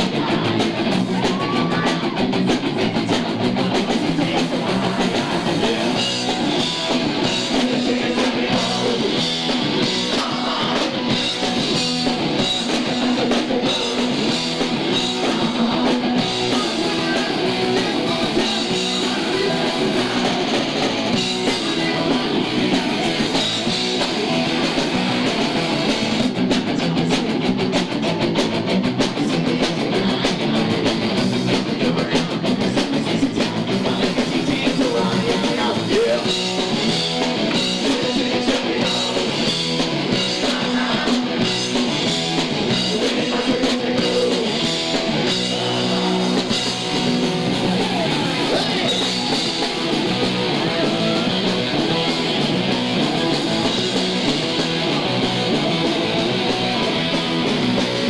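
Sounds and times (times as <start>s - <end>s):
drum kit: 0.0s - 58.0s
electric guitar: 0.0s - 58.0s.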